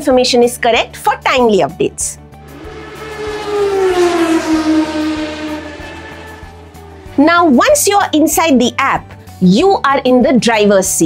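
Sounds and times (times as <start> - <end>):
vehicle passing by: 2.4 - 8.6.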